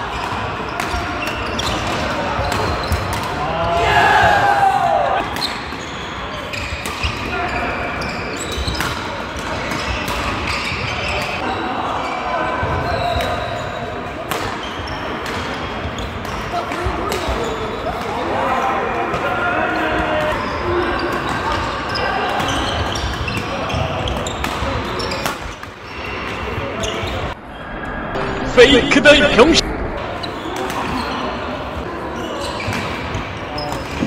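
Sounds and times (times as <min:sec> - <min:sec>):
chatter of many players: 0:00.0 - 0:34.0.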